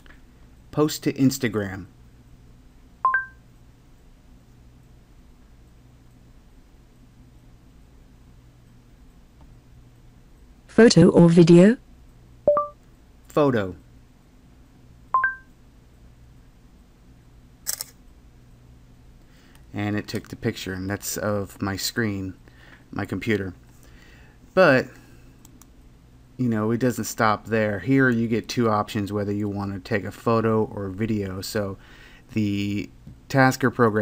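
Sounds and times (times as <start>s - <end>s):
faint low hum: 0.0s - 34.0s
two-tone phone beep: 3.0s - 3.4s, 12.5s - 12.8s, 15.2s - 15.5s
two-note rising electronic beep: 12.5s - 12.8s.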